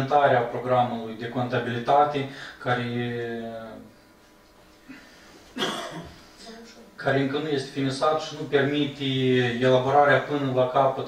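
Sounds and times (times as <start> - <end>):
person coughing loudly: 5.6 - 6.2.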